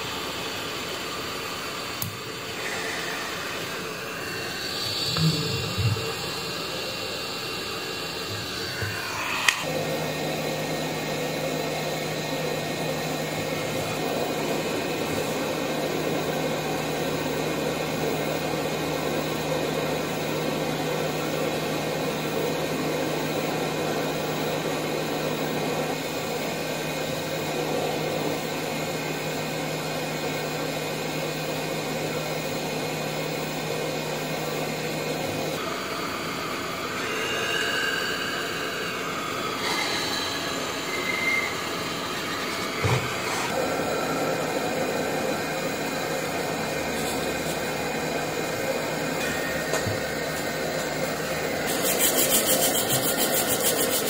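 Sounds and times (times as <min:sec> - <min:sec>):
fan whirring: 0:00.0 - 0:54.0
low hum: 0:02.2 - 0:10.8.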